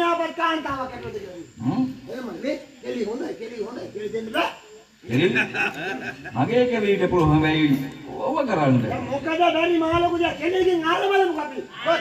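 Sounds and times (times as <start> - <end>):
man speaking: 6.3 - 12.0.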